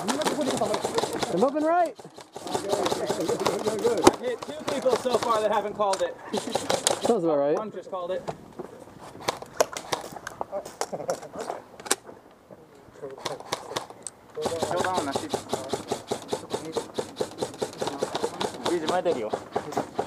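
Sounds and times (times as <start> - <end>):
airsoft guns firing: 0.0 - 7.2, 13.2 - 20.0.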